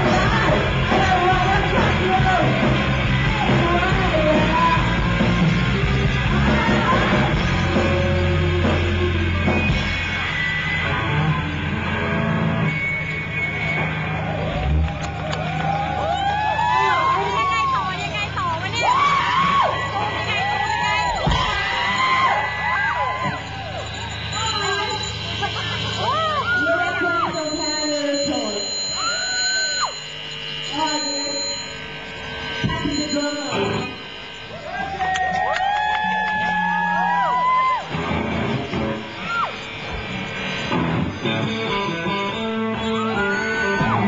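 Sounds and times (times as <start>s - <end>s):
low amplifier hum: 0.0s - 44.0s
faint high whine: 15.7s - 44.0s
high held tone: 15.7s - 44.0s.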